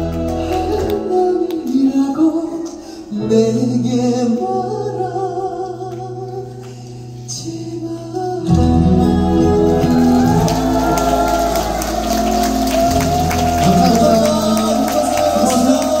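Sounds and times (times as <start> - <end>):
pop backing track with bass: 0.0 - 16.0.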